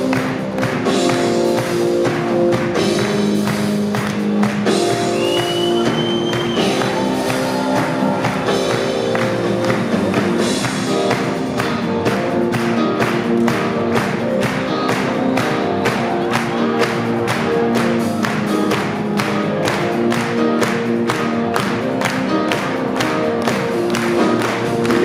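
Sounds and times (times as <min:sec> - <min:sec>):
drum kit beat: 0:00.0 - 0:25.0
electric guitar: 0:00.0 - 0:25.0.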